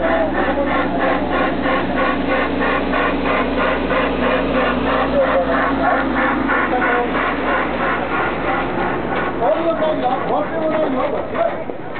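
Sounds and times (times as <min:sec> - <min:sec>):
small train engine chugging: 0:00.0 - 0:11.9.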